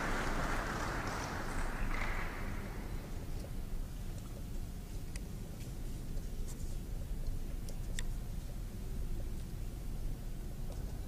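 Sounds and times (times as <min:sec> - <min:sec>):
low rumble of hall room tone: 0:00.0 - 0:11.0.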